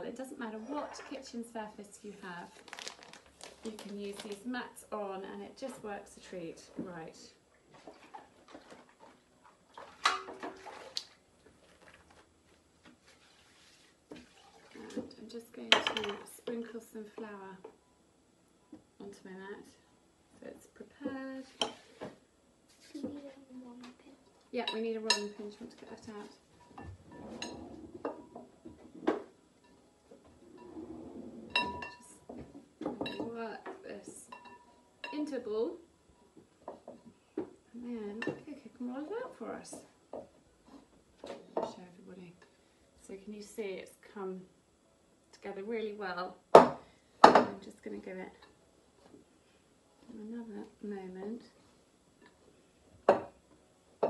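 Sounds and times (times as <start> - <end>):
bowls and utensils clinking: 31.5 - 32.2, 34.1 - 35.3.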